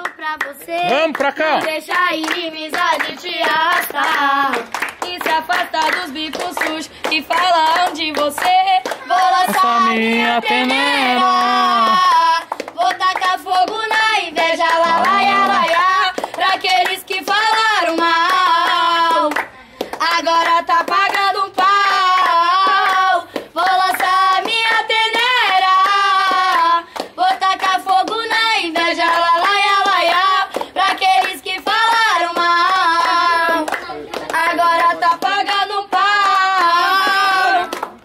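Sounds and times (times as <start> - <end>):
girls singing unaccompanied: 0.0 - 1.0, 1.6 - 38.0
hand claps: 0.0 - 38.0.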